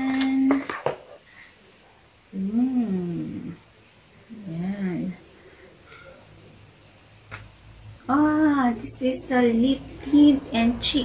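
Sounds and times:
woman humming: 2.4 - 3.6.

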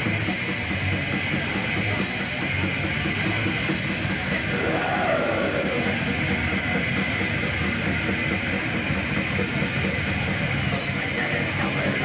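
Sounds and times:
distorted electric guitars: 0.0 - 12.0
drums: 0.0 - 12.0.

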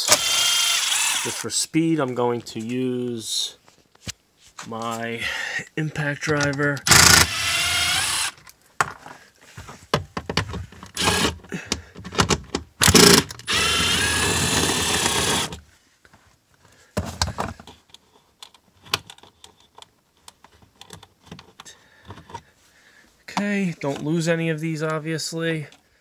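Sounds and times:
impact driver running: 0.0 - 1.4, 6.9 - 8.4, 10.9 - 11.5, 12.8 - 15.6.

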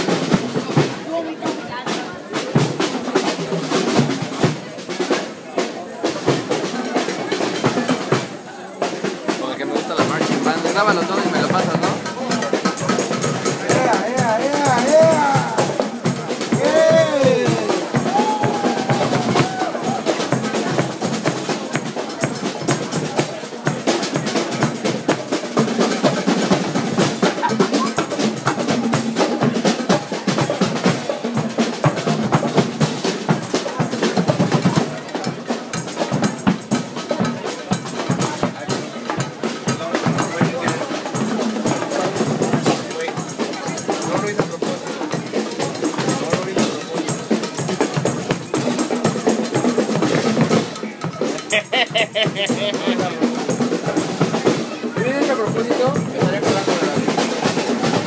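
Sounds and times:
crowd voices: 0.0 - 58.0
live drum music: 0.0 - 58.0.

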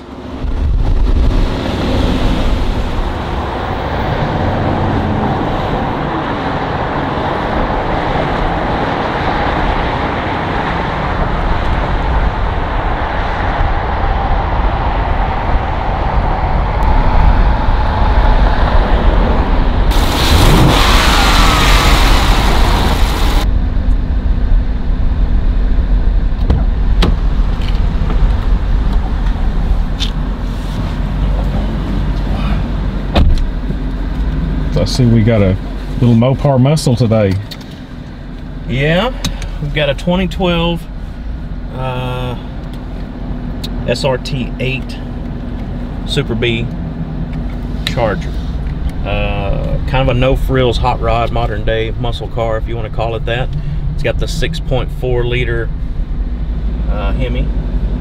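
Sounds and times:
road noise: 0.0 - 58.0
car engine running: 18.9 - 58.0
hissing noise: 19.9 - 23.5.

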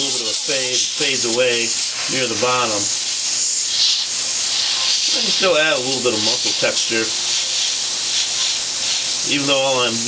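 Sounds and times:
airbrush hissing: 0.0 - 10.0.

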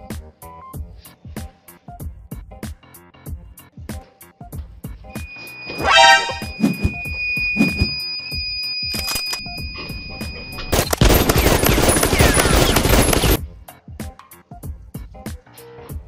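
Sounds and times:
electronic alarm tone: 5.2 - 13.4
rapid machine-gun fire: 10.7 - 13.4.

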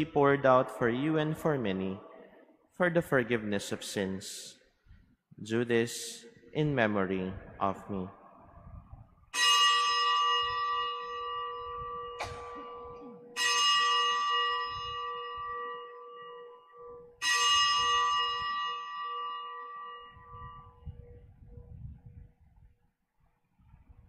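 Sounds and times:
altar bells ringing: 9.3 - 21.2.

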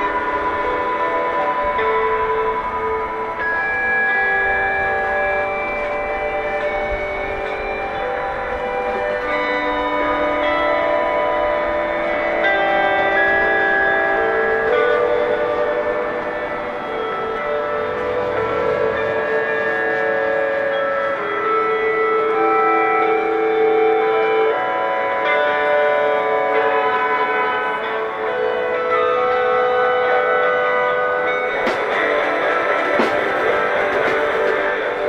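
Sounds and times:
electric guitars holding long notes: 0.0 - 35.0.

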